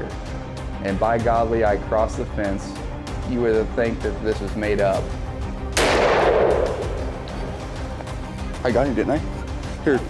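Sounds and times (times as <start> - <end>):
rifle shot echoing: 5.8 - 7.8.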